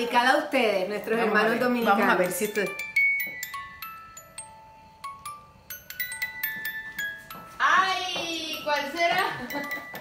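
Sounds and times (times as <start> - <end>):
music box melody: 0.8 - 10.0.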